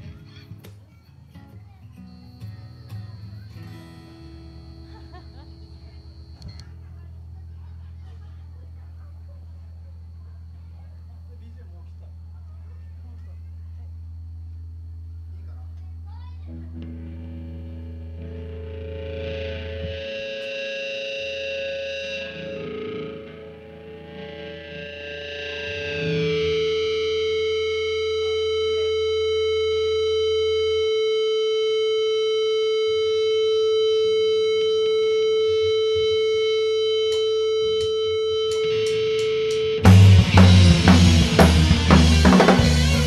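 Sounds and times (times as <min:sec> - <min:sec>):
electric guitar ringing chords: 0:00.0 - 0:07.8, 0:16.2 - 0:43.0
drums and full band: 0:38.5 - 0:43.0.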